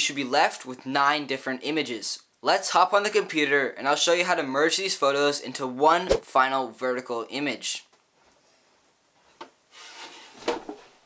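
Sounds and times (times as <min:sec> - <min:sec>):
rustle of desk chair: 0:08.2 - 0:11.0.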